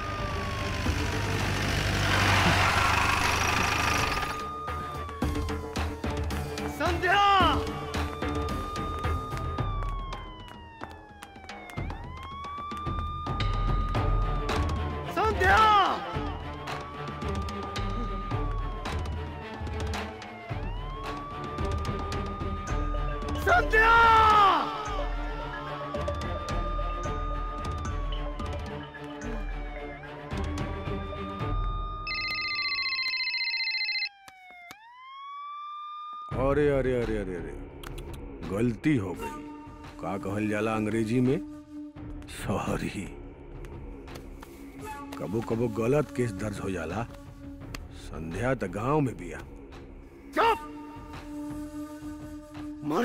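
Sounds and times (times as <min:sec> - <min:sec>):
background music: 0:00.0 - 0:34.1, 0:36.3 - 0:53.0
police siren wailing: 0:00.0 - 0:36.4, 0:50.4 - 0:53.0
man's voice: 0:06.8 - 0:07.8, 0:15.1 - 0:16.4, 0:42.3 - 0:43.4.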